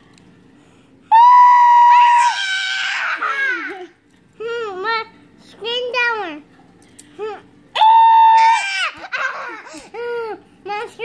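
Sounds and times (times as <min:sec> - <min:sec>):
woman screaming: 0:01.1 - 0:03.7, 0:07.8 - 0:09.0.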